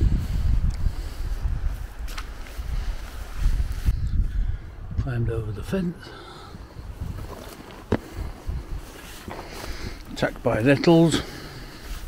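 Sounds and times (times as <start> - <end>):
footsteps through long grass: 0.0 - 4.0, 6.9 - 10.7, 11.3 - 12.0
wind rumbling on microphone: 0.0 - 12.0.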